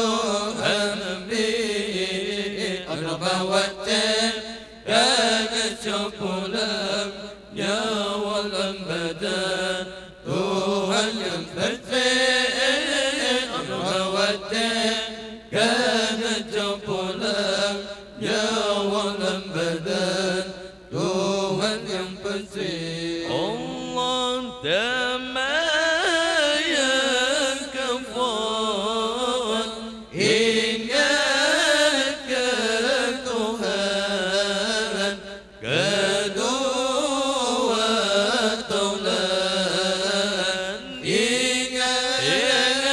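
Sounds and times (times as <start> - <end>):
man chanting into a microphone: 0.0 - 42.9.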